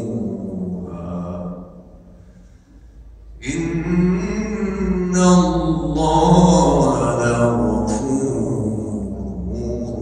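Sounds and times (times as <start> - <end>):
man chanting melodically: 0.0 - 1.9, 3.4 - 10.0.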